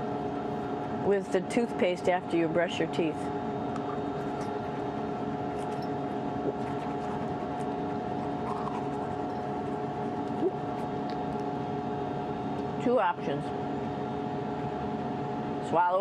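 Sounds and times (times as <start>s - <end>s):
cabin fans humming: 0.0s - 16.0s
scratchy toothbrush strokes: 6.5s - 9.8s.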